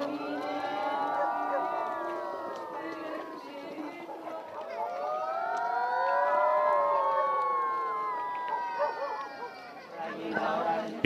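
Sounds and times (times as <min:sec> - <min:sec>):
children howling ghost sounds: 0:00.0 - 0:10.7.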